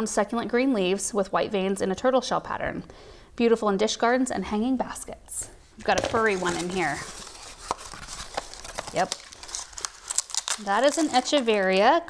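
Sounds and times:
paper rustling: 5.8s - 11.9s.

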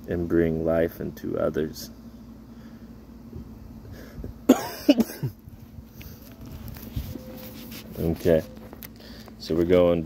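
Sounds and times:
man coughing: 4.4s - 5.4s.

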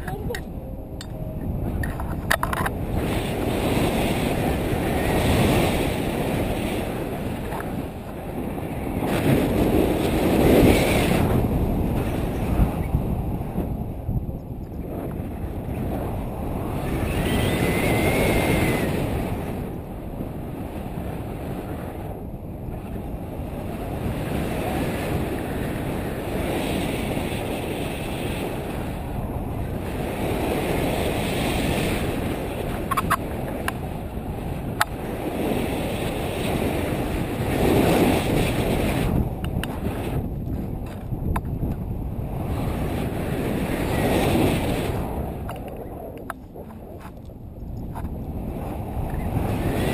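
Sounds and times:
wind rumbling on microphone: 0.0s - 49.9s.

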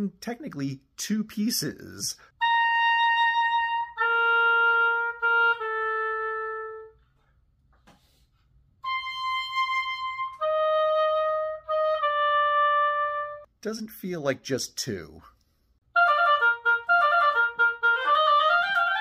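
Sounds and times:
oboe playing slow notes: 2.4s - 7.0s, 8.8s - 13.4s, 16.0s - 19.0s.

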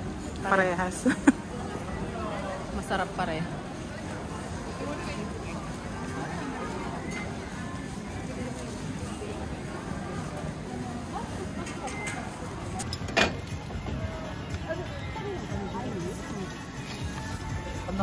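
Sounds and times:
chatter of passers-by: 0.0s - 18.0s
music playing: 12.7s - 18.0s.

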